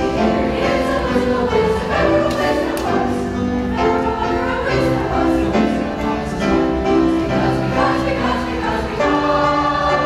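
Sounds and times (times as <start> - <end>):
youth choir singing: 0.0 - 10.0.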